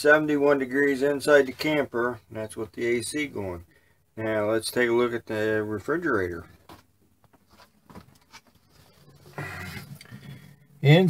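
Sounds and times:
soft rustling: 0:06.4 - 0:09.3.

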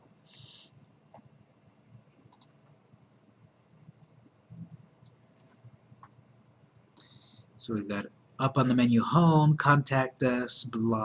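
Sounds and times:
soft hiss: 0:00.0 - 0:11.0
computer mouse clicks: 0:00.4 - 0:02.8, 0:03.8 - 0:07.1.

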